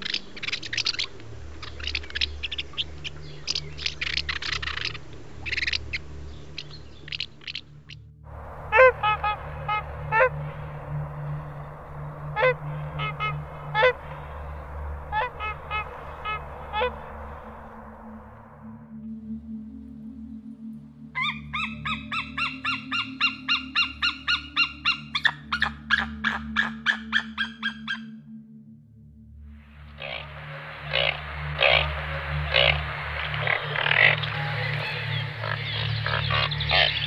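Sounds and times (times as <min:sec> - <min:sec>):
swallows twittering: 0:00.0 - 0:08.0, 0:30.0 - 0:37.0
swan honking: 0:08.4 - 0:18.6, 0:21.2 - 0:28.0, 0:29.8 - 0:37.0.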